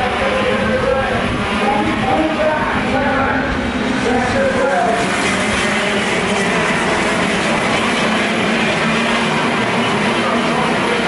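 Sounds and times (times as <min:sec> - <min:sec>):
karts racing engines: 0:00.0 - 0:11.0.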